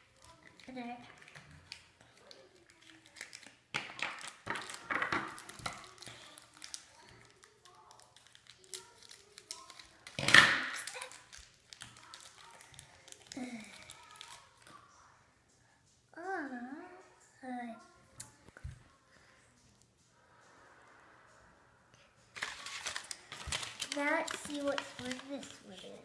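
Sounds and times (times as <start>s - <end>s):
plastic packaging crinkling: 0.1s - 14.7s, 22.4s - 26.0s
scissors cutting plastic: 4.2s - 14.4s, 22.4s - 26.0s
child murmuring: 16.2s - 16.9s.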